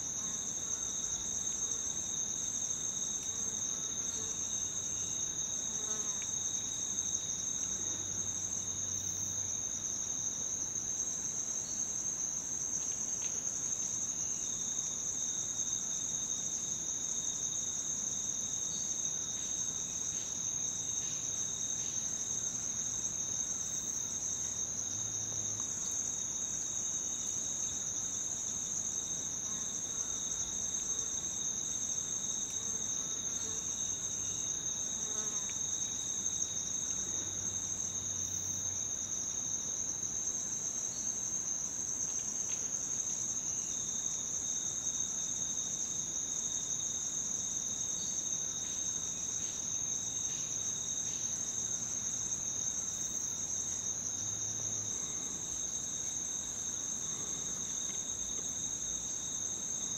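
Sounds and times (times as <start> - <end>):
insects chorus: 0.0 - 59.9.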